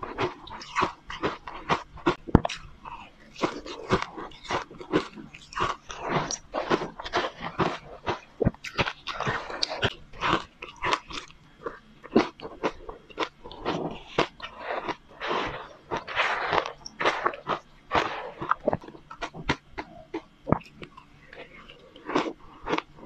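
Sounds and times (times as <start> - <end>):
crunching and chewing ice: 0.0 - 23.0.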